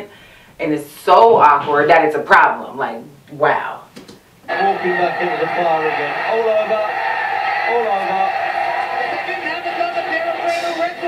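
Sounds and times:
arena crowd noise: 4.4s - 11.0s
commentator talking: 4.5s - 11.0s.

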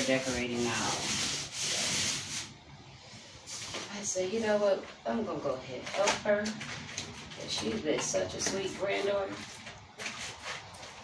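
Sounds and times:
paint roller rasping on wall: 0.0s - 2.6s.

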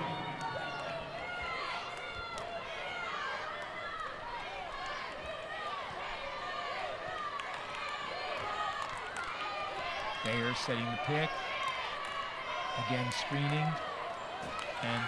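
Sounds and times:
arena crowd hubbub: 0.0s - 15.0s.

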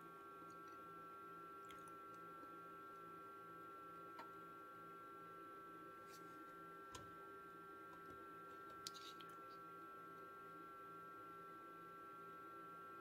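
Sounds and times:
faint high whine: 0.0s - 13.0s.

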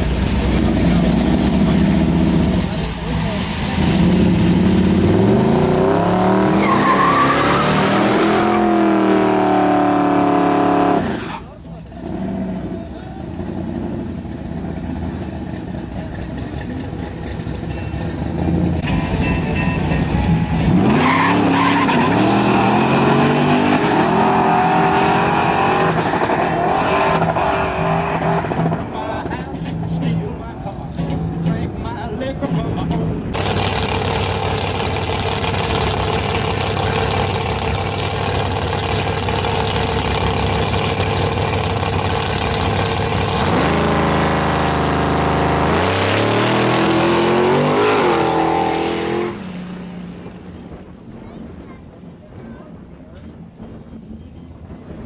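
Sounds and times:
car engine revving hard: 0.5s - 11.2s, 20.6s - 28.7s, 33.4s - 49.4s
tyre squeal: 6.3s - 8.8s.

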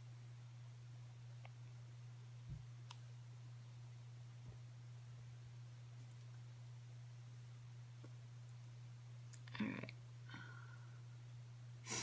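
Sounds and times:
woman speaking: 9.5s - 10.0s.

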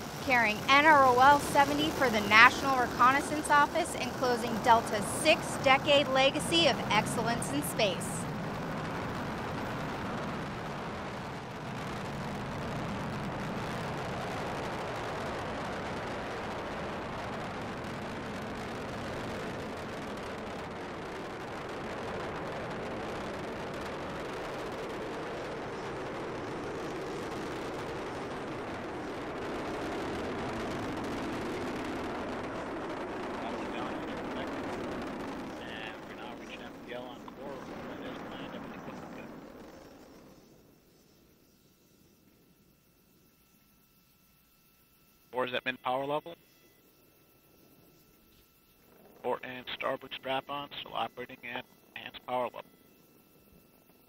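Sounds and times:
rocket engines rushing: 0.0s - 41.4s.

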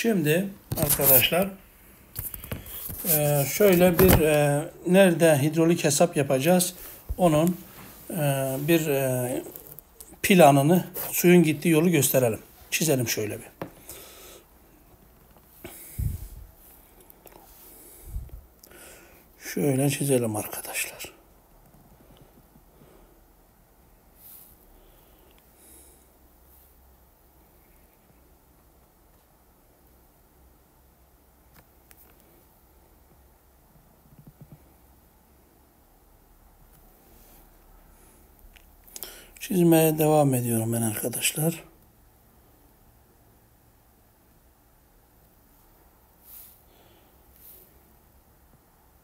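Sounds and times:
faint hiss: 0.0s - 49.0s
soft breaths: 13.6s - 19.4s, 21.9s - 28.3s, 36.9s - 39.4s, 46.1s - 48.0s
person breathing: 13.8s - 14.5s, 15.6s - 16.6s, 17.4s - 19.3s, 39.0s - 39.4s, 46.2s - 47.8s.

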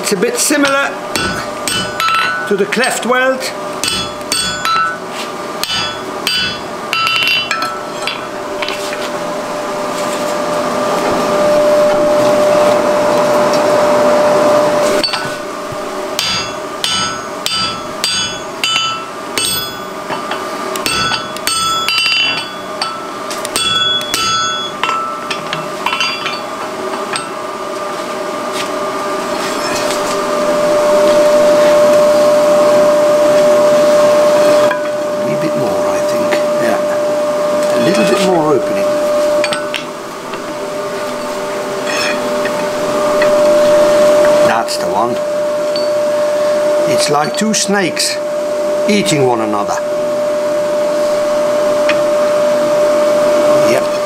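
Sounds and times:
forge blower rushing air: 0.0s - 54.0s.

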